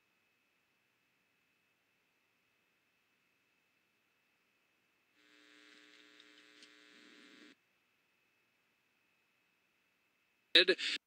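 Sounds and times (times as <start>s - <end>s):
steady buzzing tone with hiss: 0.0s - 11.0s.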